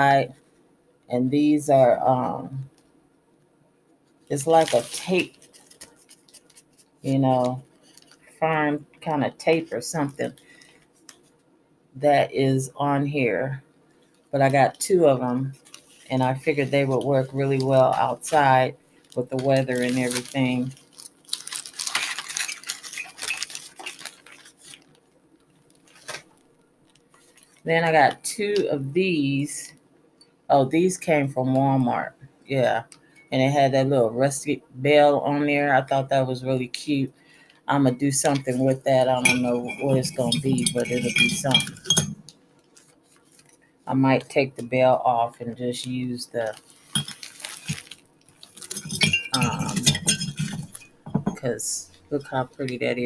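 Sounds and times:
pine sprig rustling: 0:04.3 - 0:08.6, 0:14.1 - 0:27.7, 0:38.2 - 0:43.7, 0:46.4 - 0:53.0
shopping items clicking and clinking: 0:38.2 - 0:42.2, 0:46.9 - 0:51.4
small bell jingling: 0:39.2 - 0:42.2.

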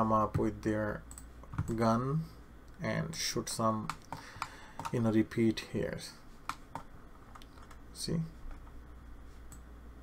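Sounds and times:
computer keys clicking: 0:03.8 - 0:05.0.

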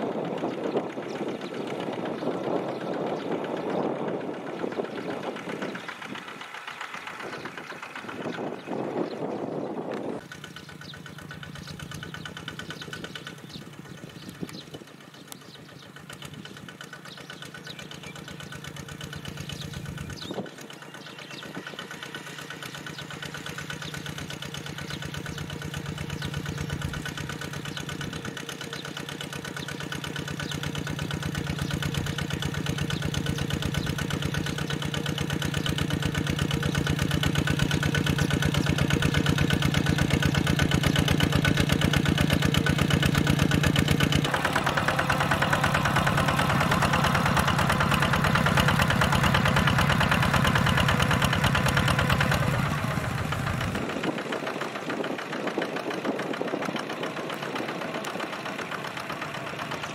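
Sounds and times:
diesel tractor engine running: 0:00.0 - 0:59.9.

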